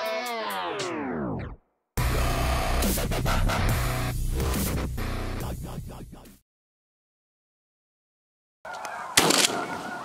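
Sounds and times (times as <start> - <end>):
shotgun shot: 9.2 - 9.7.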